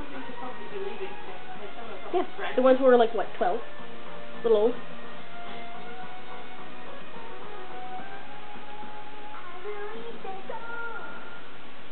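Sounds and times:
backing music: 0.0 - 11.6
girl group singing: 9.3 - 11.4.

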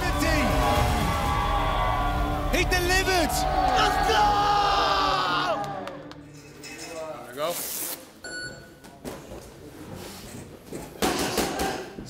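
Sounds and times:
crowd noise: 0.0 - 6.4
man shouting: 2.6 - 5.6.

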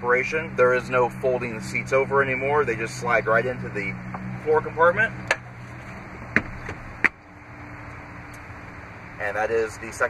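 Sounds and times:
car seat dropping with knocks: 6.2 - 7.2.

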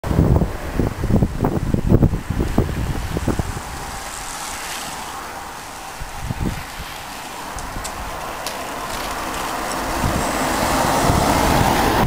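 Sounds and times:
wind buffeting microphone: 0.0 - 12.0
steady outdoor hiss: 0.1 - 12.0.

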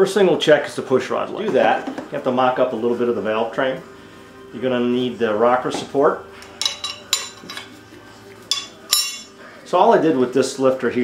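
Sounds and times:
metal-on-metal clinks: 8.5 - 9.3.

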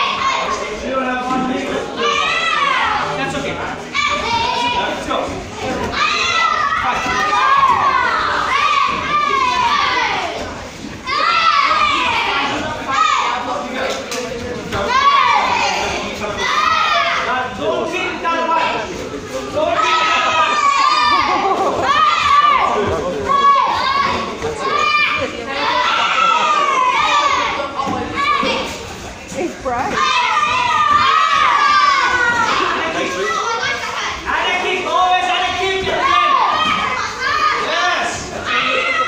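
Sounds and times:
children shouting in echoing hall: 0.0 - 0.7, 1.9 - 3.2, 5.8 - 13.5, 14.8 - 17.4, 19.6 - 28.9, 29.9 - 34.7, 35.6 - 39.0.

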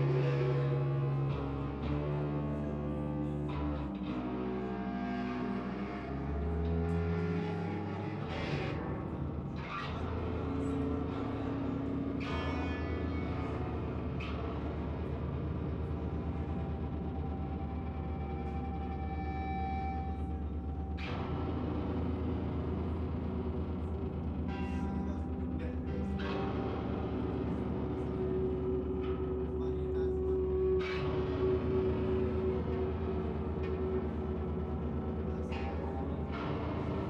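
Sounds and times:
effects-processed electric guitar: 0.0 - 37.0
sustained low bass notes: 0.0 - 37.0.

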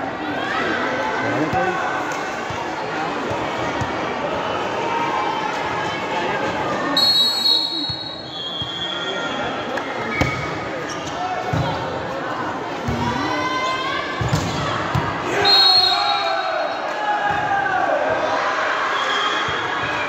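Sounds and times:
referee's whistle blowing: 7.0 - 10.4, 15.4 - 16.8, 18.9 - 19.6
players and spectators shouting: 12.4 - 20.0.

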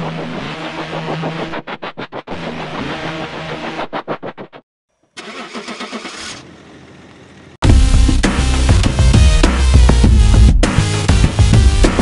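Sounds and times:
car engine cranking: 5.2 - 7.2.

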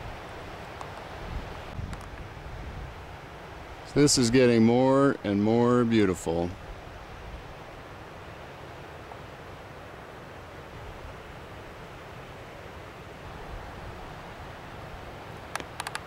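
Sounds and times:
wind on microphone: 1.2 - 3.2.

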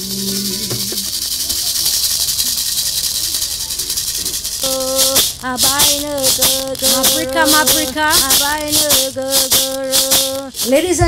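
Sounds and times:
gourd rattle shaking: 0.0 - 11.0.

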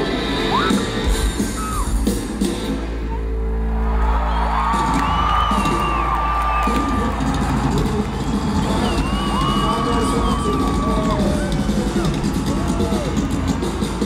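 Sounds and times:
rock band playing live: 0.0 - 3.5, 4.7 - 14.0
crowd cheering: 3.0 - 14.0.

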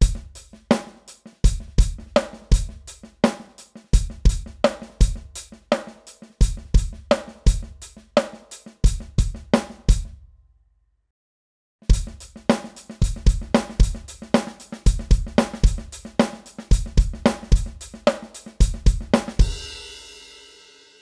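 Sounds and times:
electronic drum kit groove: 0.0 - 10.1, 11.9 - 19.9.

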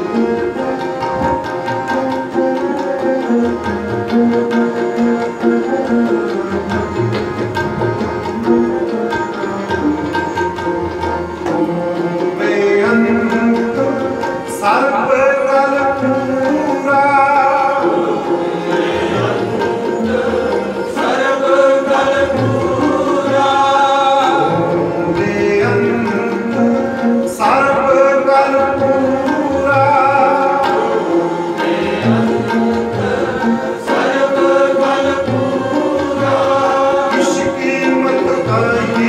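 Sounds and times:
bowed string instrument: 0.0 - 39.0
soft tabla beats: 0.0 - 39.0
voices singing a hymn: 17.7 - 25.2, 29.0 - 39.0.

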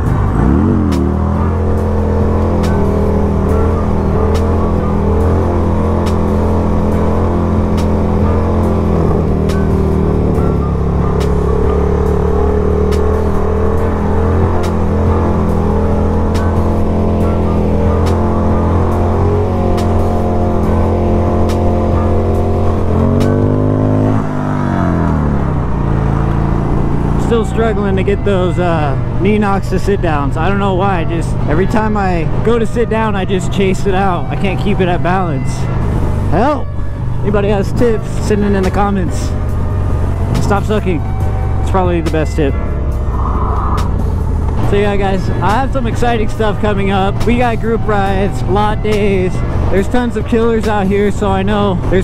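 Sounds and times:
motorcycle engine cruising: 0.0 - 52.0.

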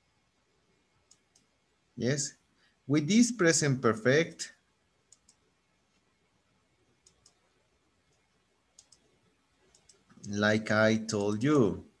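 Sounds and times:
faint computer mouse clicks: 1.0 - 1.6, 5.1 - 6.1, 7.0 - 7.4, 8.1 - 10.4.

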